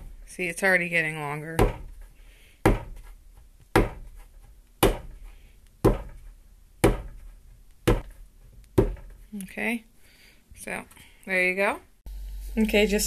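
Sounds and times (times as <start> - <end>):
clay thumping on a board: 1.6 - 9.2.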